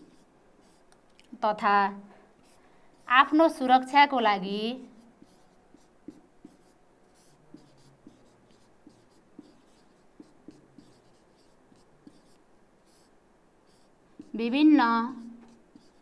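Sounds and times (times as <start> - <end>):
marker pen on whiteboard: 0.0 - 16.0.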